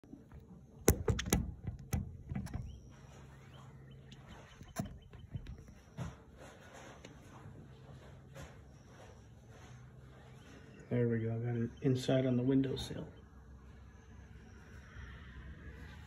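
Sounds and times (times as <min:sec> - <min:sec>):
low steady hum: 0:00.0 - 0:16.0
phone handling clicks and knocks: 0:00.3 - 0:02.9.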